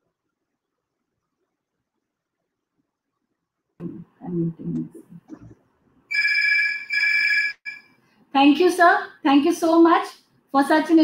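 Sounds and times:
electronic phone ringtone: 0:06.1 - 0:07.9.

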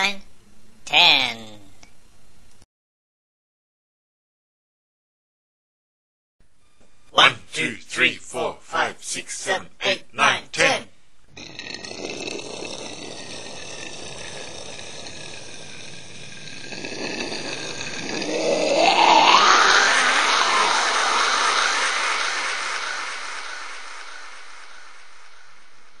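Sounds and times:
rising whoosh: 0:12.6 - 0:26.0.

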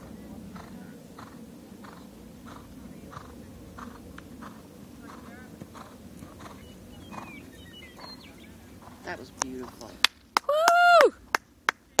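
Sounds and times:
hands clapping: 0:09.4 - 0:12.0
high-pitched cheer: 0:10.4 - 0:11.2.

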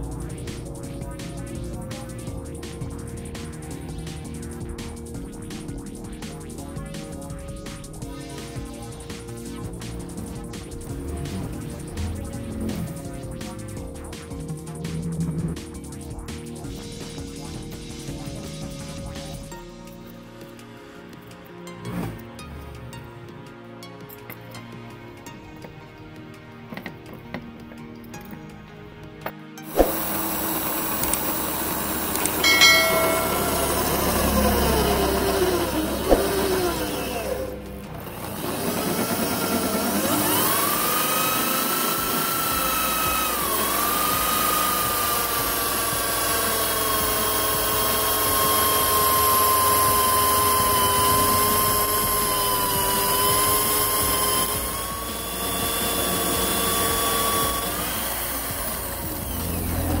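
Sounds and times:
drill press motor whining: 0:29.7 - 1:00.0.

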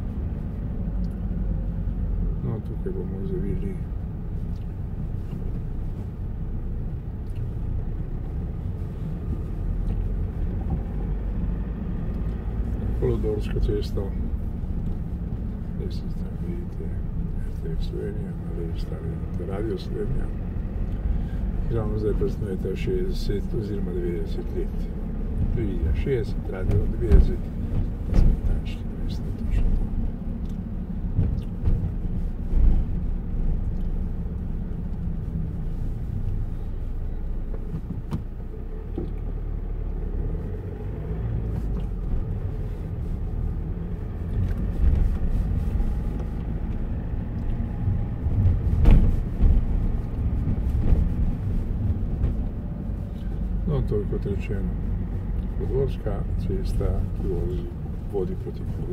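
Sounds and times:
car engine and road rumble: 0:00.0 - 0:58.9
thumps: 0:26.6 - 0:28.8, 0:48.0 - 0:52.7.

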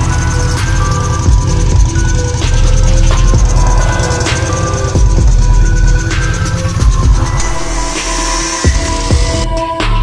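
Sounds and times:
sustained synth notes: 0:00.0 - 0:09.4
deep pulsing bass: 0:00.0 - 0:09.6.

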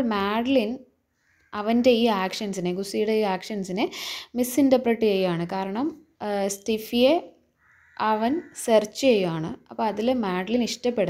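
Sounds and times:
woman narrating: 0:00.0 - 0:00.9, 0:01.6 - 0:07.4, 0:08.0 - 0:11.0.

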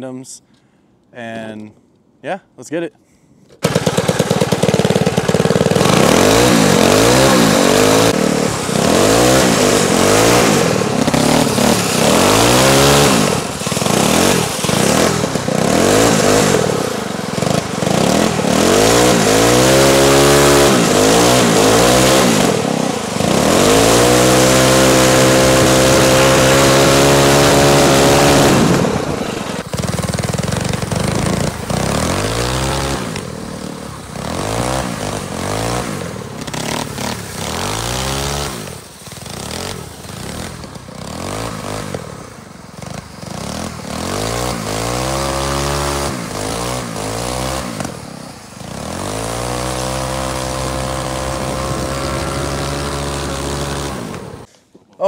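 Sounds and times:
kart engines revving: 0:03.6 - 0:54.5.

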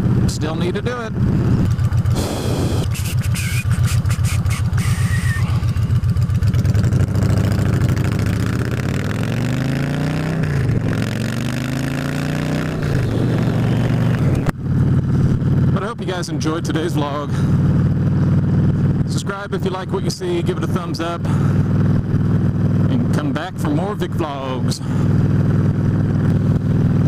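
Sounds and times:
motorcycle engine accelerating: 0:00.0 - 0:27.0.

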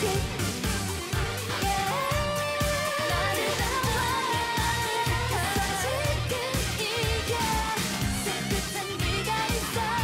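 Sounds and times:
driving dance beat: 0:00.0 - 0:10.0
women singing: 0:01.5 - 0:10.0.

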